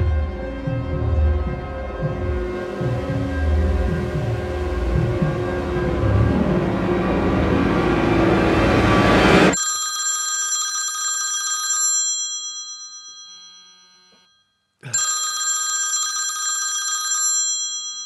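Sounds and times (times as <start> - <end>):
loud dense rumbling noise: 0.0 - 9.5
mobile phone ringing: 9.5 - 18.0.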